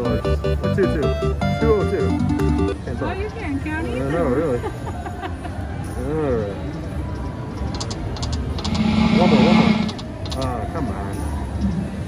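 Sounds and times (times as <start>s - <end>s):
casino background voices: 6.0s - 11.6s
high electronic clicks: 7.8s - 10.4s
steady electronic tone with hiss: 8.6s - 10.0s.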